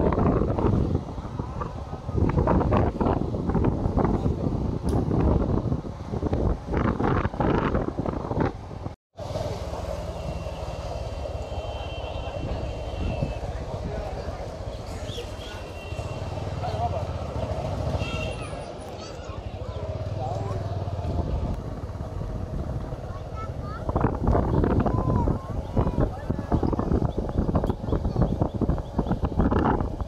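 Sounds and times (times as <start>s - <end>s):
road and wind noise: 0.0s - 30.0s.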